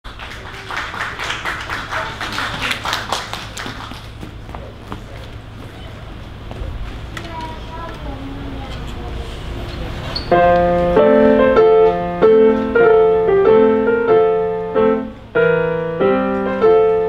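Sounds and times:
audience applauding: 0:00.0 - 0:04.4
grand piano playing: 0:10.3 - 0:17.0.

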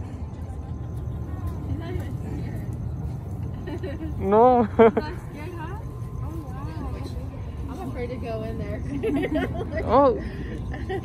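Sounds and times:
distant people talking: 0:00.0 - 0:11.0
steady low rumble: 0:00.0 - 0:11.0.

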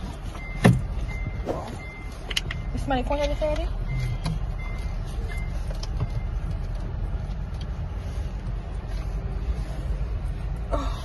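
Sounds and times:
car engine and tyres rumbling: 0:00.0 - 0:11.0
short high beeps: 0:00.4 - 0:02.8.

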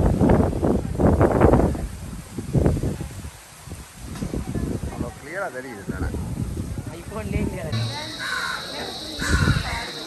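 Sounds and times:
wind gusting on microphone: 0:00.0 - 0:10.0.

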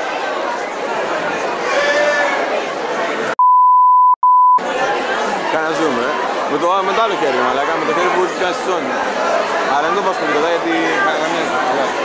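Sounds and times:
loud electronic beep: 0:03.4 - 0:04.6.

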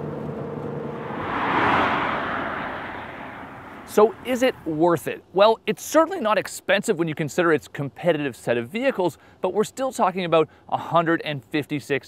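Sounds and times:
whoosh: 0:00.7 - 0:04.3.

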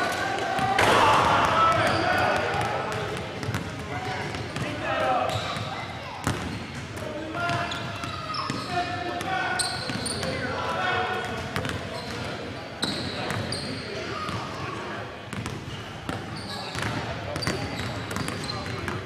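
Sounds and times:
voices echoing in hall: 0:00.0 - 0:19.0.

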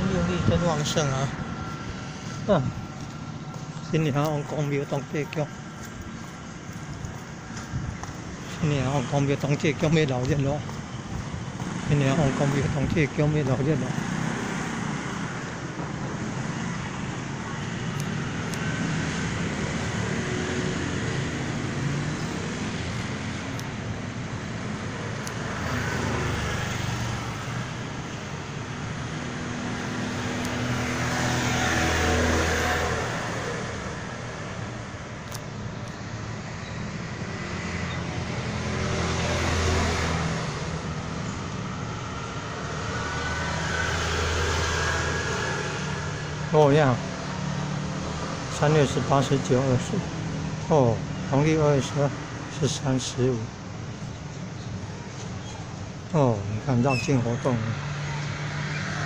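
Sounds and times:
passing vehicles: 0:00.0 - 0:59.0.

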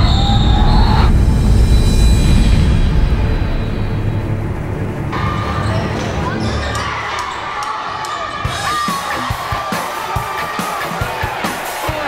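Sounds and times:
crowd chatter: 0:05.2 - 0:12.0.

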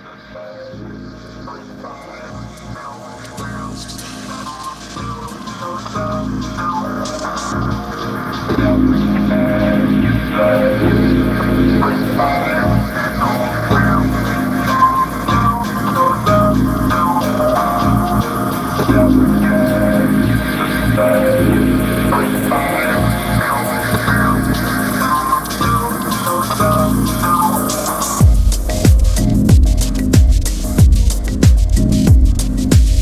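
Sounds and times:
electronic chillwave music: 0:00.0 - 0:33.0.

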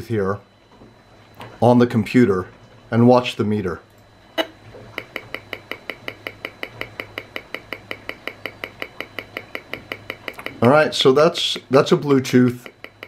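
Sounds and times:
rf meter clicking: 0:04.9 - 0:13.0.

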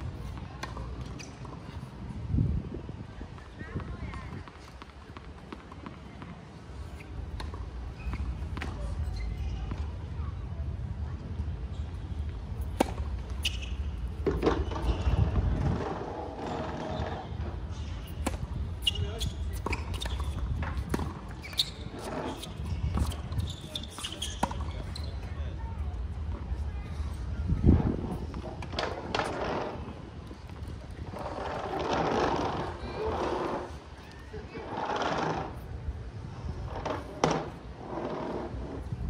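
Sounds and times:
racket hitting tennis ball: 0:12.6 - 0:14.8
tennis ball bouncing: 0:12.6 - 0:15.0, 0:19.6 - 0:21.6.

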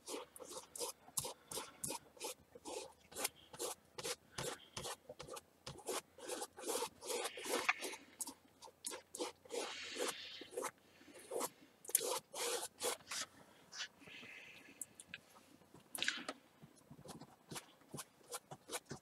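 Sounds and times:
brush scrubbing on canvas: 0:00.0 - 0:10.7, 0:11.3 - 0:13.3.

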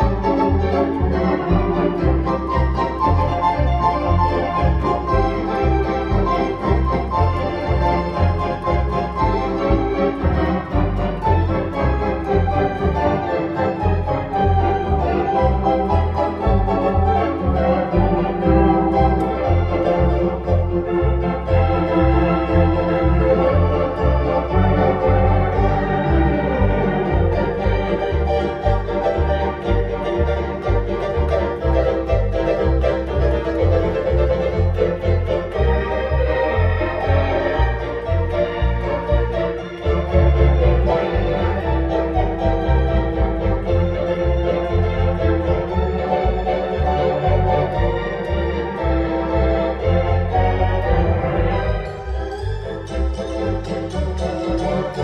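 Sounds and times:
electronic organ tune over chords: 0:00.0 - 0:55.0
pulsing organ bass line: 0:00.0 - 0:55.0.

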